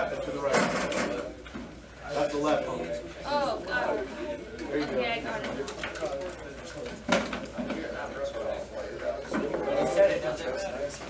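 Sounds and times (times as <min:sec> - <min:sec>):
students chatting: 0:00.0 - 0:11.0.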